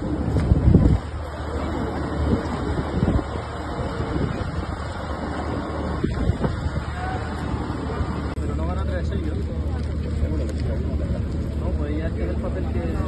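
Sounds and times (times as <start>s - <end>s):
low hum and rumble: 0.0s - 13.0s.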